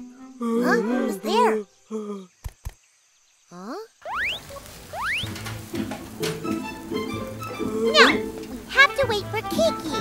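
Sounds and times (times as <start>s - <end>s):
squeaky rising chirps: 3.7s - 8.9s
grill sizzling: 4.1s - 10.0s
light background music: 5.2s - 10.0s.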